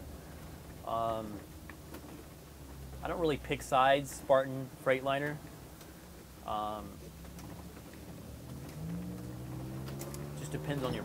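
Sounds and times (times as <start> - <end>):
engine and road noise drone: 0.0 - 11.0.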